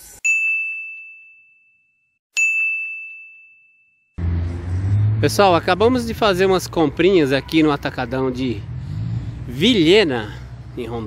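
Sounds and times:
high bell-like ding: 0.2s - 4.2s.

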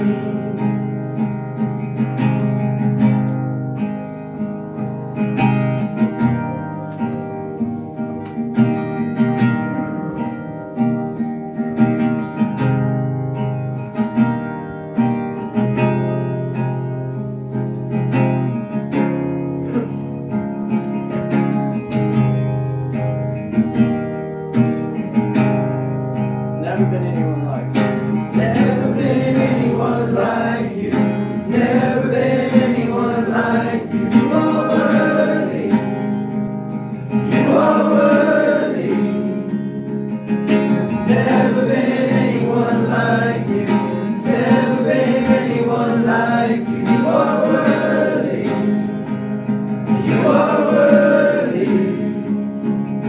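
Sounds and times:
voices singing: 0.0s - 1.0s, 28.2s - 36.4s, 37.0s - 39.9s, 40.5s - 52.5s
acoustic guitar strumming chords: 0.0s - 53.0s.

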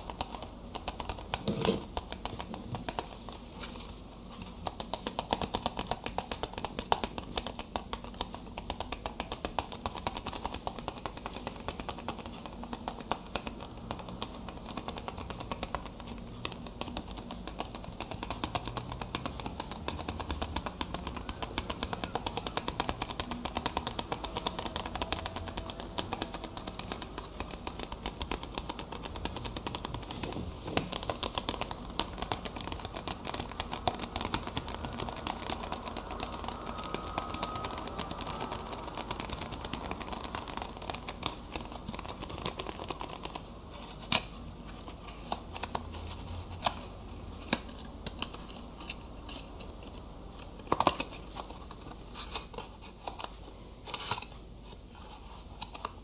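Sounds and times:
fingertip tapping on hard object: 0.0s - 3.1s, 4.6s - 43.5s.

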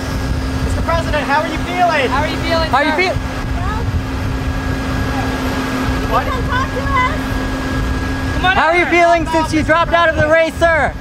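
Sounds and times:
engine rumble: 0.0s - 11.0s.

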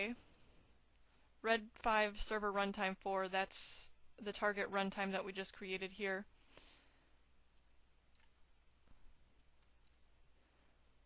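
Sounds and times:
computer mouse clicks: 7.5s - 10.1s.

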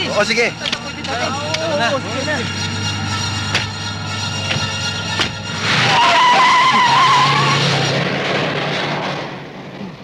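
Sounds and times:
tyres squealing: 0.0s - 8.0s
car engine pulling away: 0.0s - 10.0s.

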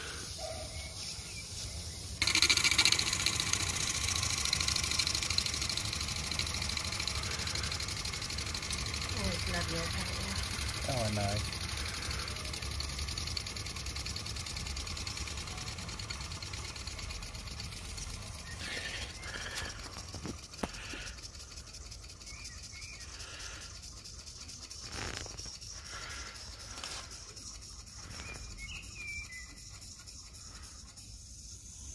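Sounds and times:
model steam engine chuffing: 0.0s - 31.9s
steam hissing: 1.2s - 31.9s.

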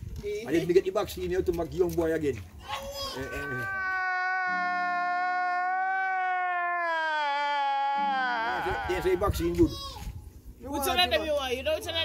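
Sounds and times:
comedic wailing cry: 3.0s - 9.6s.

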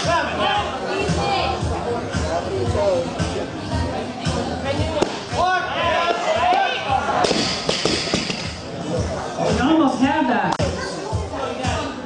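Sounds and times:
voices shouting and cheering: 0.0s - 7.7s, 8.5s - 12.0s.

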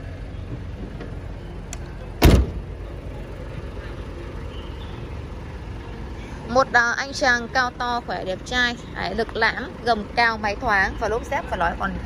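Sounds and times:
low steady background rumble: 0.0s - 12.0s
car door shutting: 2.2s - 2.7s.

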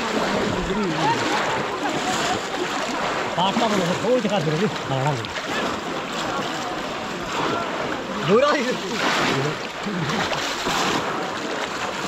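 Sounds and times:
water sloshing and splashing: 0.0s - 12.0s.

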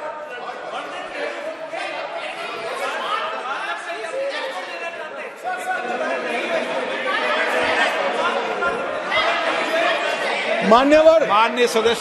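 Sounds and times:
many voices talking and calling out: 0.0s - 12.0s.

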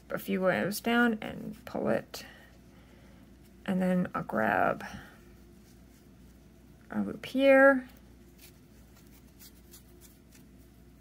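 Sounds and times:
fingers rustling yarn: 0.0s - 11.0s
soft scratches: 4.9s - 6.9s, 7.5s - 11.0s.

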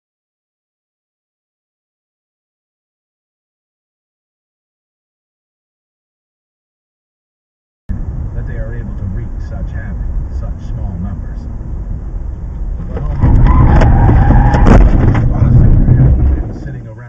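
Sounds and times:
loud rush of noise: 7.9s - 17.0s
road and engine noise: 7.9s - 17.0s
vehicle collision impact: 7.9s - 17.0s.

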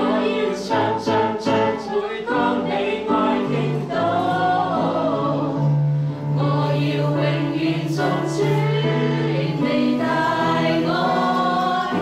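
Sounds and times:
people singing: 0.0s - 12.0s.

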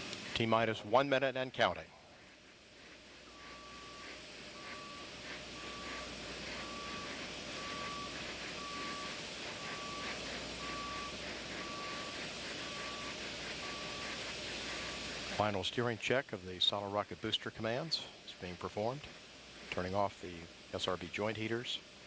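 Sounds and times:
outdoor noise: 0.0s - 22.0s
short electronic beeps: 3.3s - 15.0s.

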